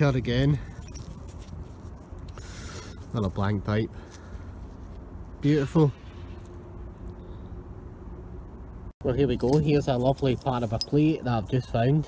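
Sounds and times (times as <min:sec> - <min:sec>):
faint steady hum: 0:00.0 - 0:12.0
low outdoor rumble: 0:00.0 - 0:12.0.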